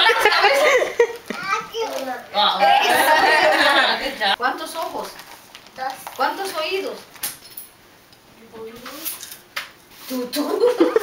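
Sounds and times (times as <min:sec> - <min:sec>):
children chattering: 0:00.0 - 0:04.4
adults talking: 0:00.0 - 0:04.5.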